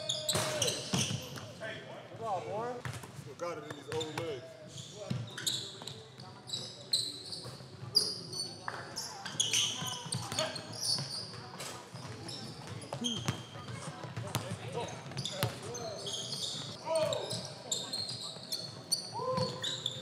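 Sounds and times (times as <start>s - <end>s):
sneakers squeaking: 0.0s - 1.6s, 2.8s - 20.0s.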